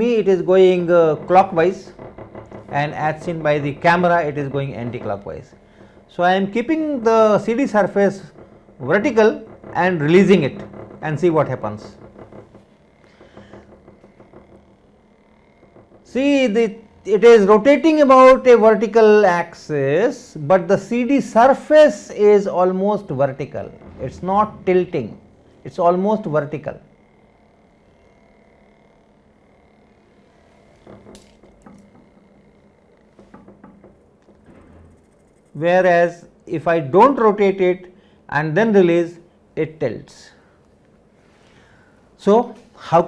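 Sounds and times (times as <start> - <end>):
small motor humming and whining: 11.4 - 18.2, 24.2 - 35.6
disc clicks and knocks: 30.7 - 35.5.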